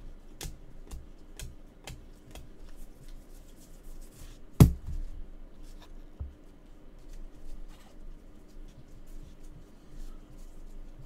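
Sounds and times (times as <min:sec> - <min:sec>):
light clicks and taps of cards: 0:00.3 - 0:03.3
loud knock on table: 0:04.6 - 0:05.0.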